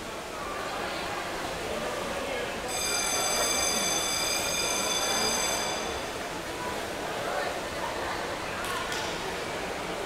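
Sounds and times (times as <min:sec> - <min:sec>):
pool hiss and rumble: 0:00.0 - 0:10.0
high-pitched buzzer underwater: 0:02.7 - 0:06.2.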